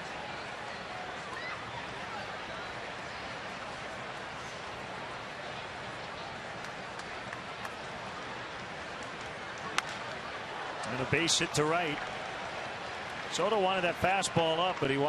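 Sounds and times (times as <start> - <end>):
murmur of crowd: 0.0 - 15.0
baseball bat cracking ball: 9.7 - 10.1.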